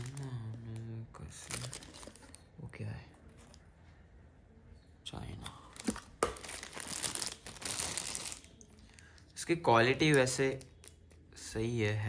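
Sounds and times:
plastic bag crinkling: 0:00.0 - 0:02.4, 0:05.8 - 0:09.1.

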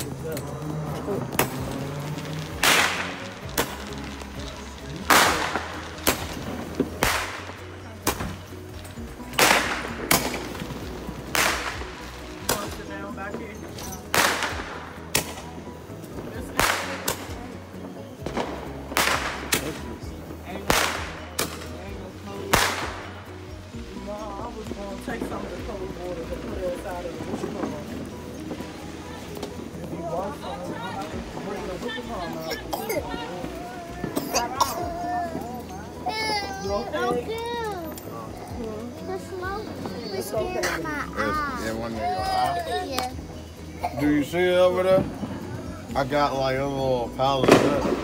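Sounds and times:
fireworks banging: 0:00.0 - 0:48.0.

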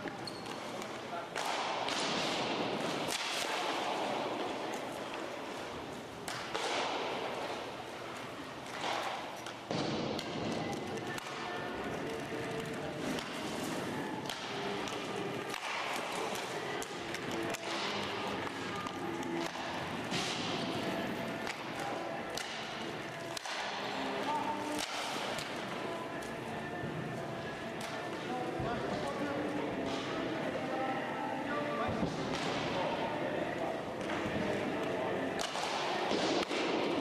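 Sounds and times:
inline skates scraping: 0:10.5 - 0:30.7.

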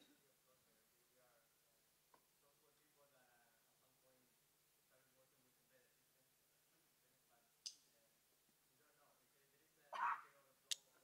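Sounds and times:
mouth click: 0:10.7 - 0:10.9.

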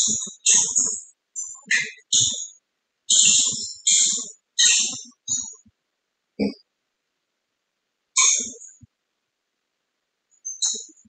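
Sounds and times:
garbled video call audio bursts: 0:00.0 - 0:02.5, 0:03.1 - 0:05.7.

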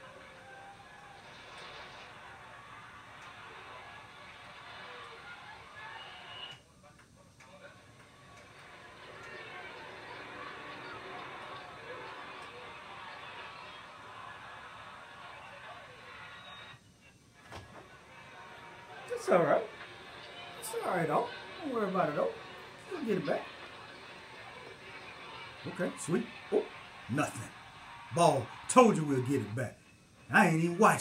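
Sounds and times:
faint tv crowd hubbub: 0:00.0 - 0:31.0.

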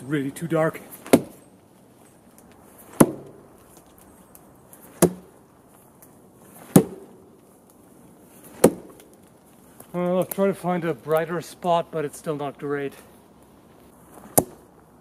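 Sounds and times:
thrown sword striking tree trunk: 0:00.9 - 0:01.5, 0:02.7 - 0:03.8, 0:04.8 - 0:05.4, 0:06.5 - 0:07.4, 0:08.3 - 0:09.2, 0:14.2 - 0:14.7.

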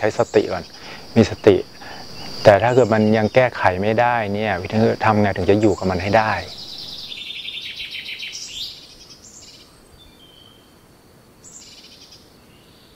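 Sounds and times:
high-pitched chirping and trilling: 0:00.2 - 0:08.8.

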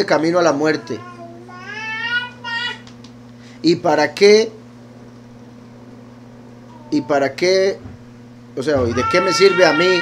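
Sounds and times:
cat meowing: 0:08.8 - 0:10.0.

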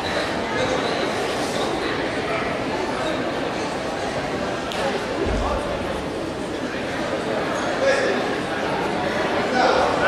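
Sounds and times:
murmur of many people talking: 0:00.0 - 0:10.0.

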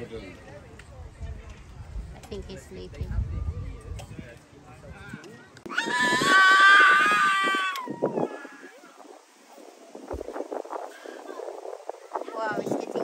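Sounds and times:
loud high-pitched cry: 0:05.7 - 0:08.8.

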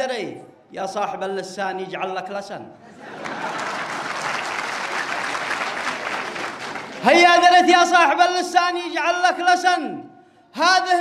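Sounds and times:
audience applauding: 0:03.0 - 0:07.5.

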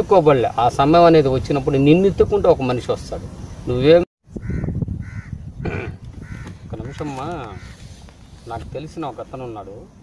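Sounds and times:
crow cawing: 0:04.4 - 0:07.9.

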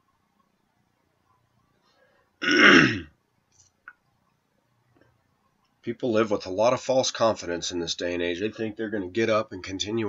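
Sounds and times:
man clearing his throat: 0:02.4 - 0:03.2.

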